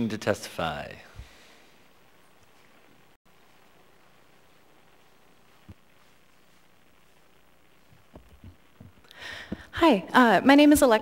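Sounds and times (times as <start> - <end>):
microphone handling thumps: 5.6 - 6.1, 7.8 - 9.8.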